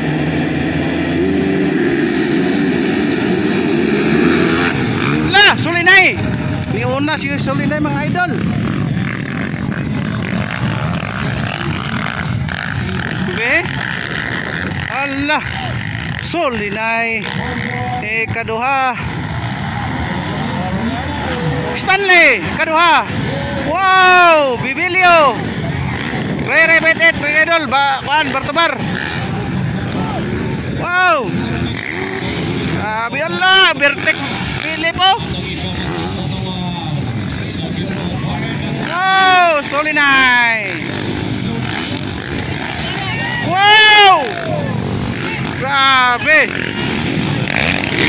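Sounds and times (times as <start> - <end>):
dirt bike engines revving: 0.0 - 48.0
announcer shouting: 4.5 - 8.4, 14.8 - 28.8, 29.8 - 32.0, 32.7 - 48.0.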